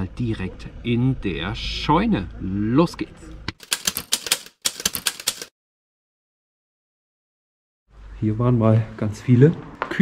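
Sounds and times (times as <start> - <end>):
typewriter key strikes: 3.6 - 5.5.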